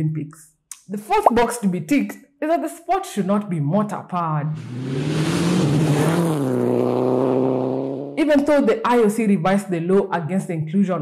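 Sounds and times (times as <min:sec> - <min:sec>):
racing car engine high revs: 0:04.5 - 0:08.2.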